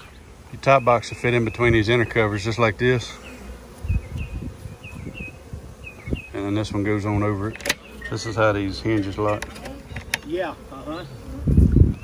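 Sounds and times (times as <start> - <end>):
honey bees buzzing: 0.0 - 12.0.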